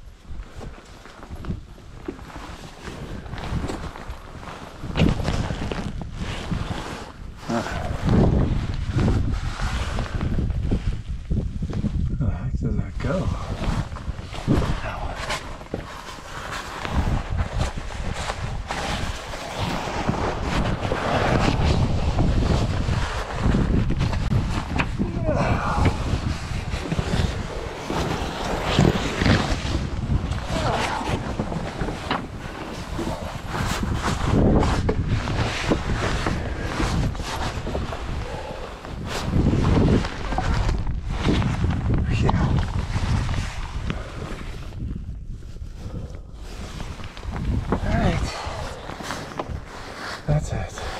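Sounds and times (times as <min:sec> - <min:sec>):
air buffeting microphone: 0:00.0 - 0:50.9
clothing scraping against rock: 0:00.4 - 0:12.0, 0:13.0 - 0:50.9
person breathing: 0:38.0 - 0:39.2, 0:45.7 - 0:46.9, 0:48.2 - 0:50.0.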